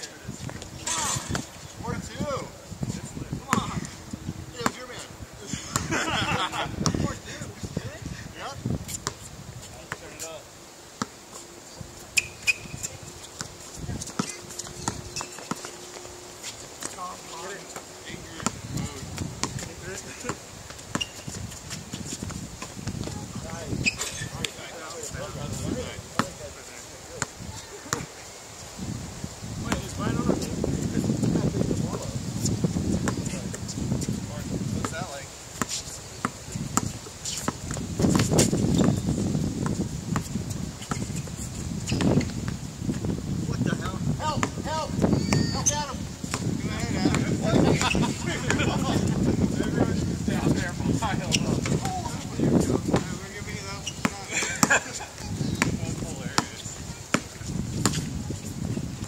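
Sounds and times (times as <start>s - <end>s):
voices: 0.0s - 28.8s, 29.5s - 39.0s, 43.4s - 59.0s
wind rumble on microphone: 0.1s - 10.2s, 11.7s - 15.2s, 18.0s - 26.6s, 27.3s - 59.0s
footsteps: 11.0s - 17.9s.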